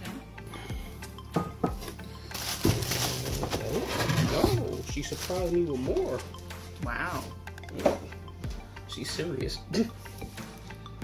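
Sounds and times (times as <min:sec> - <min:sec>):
plastic wrap crinkling: 0:02.3 - 0:06.2.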